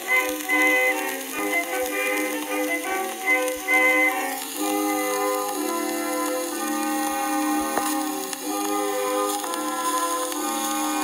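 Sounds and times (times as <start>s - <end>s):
old recording instrumental melody: 0.0s - 11.0s
record surface hiss: 0.0s - 11.0s.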